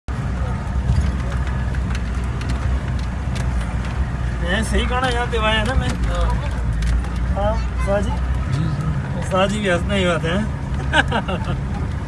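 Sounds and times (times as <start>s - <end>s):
vehicle engine and road rumble: 0.0s - 12.0s
knocks and rattles over bumps: 0.1s - 9.8s.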